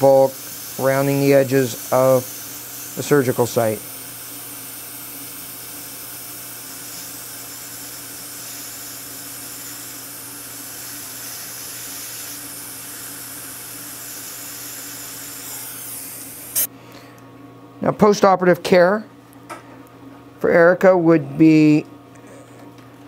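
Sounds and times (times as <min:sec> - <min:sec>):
dental suction hissing: 0:00.0 - 0:16.7.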